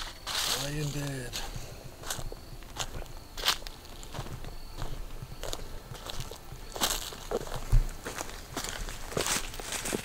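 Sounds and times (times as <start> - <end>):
footsteps on dry pine straw: 0.0 - 10.0.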